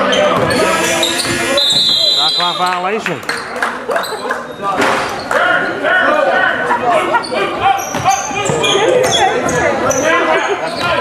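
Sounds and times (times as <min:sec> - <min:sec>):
sneaker squeaks: 0:00.0 - 0:05.4, 0:07.1 - 0:11.0
voices echoing in hall: 0:00.0 - 0:11.0
basketball bouncing on hardwood: 0:07.9 - 0:09.6.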